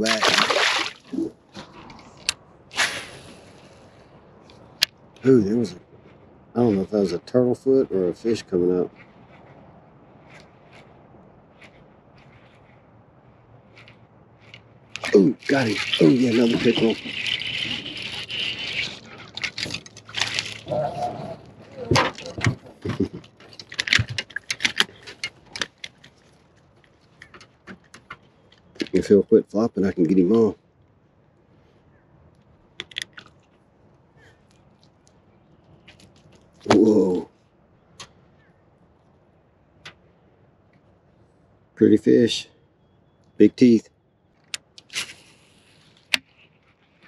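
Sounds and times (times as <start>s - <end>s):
fish splashing at surface: 0.0s - 1.2s
fish flopping in metal boat: 0.0s - 2.3s, 15.0s - 26.2s
fishing line and lure rattling: 13.7s - 20.8s, 32.8s - 33.6s.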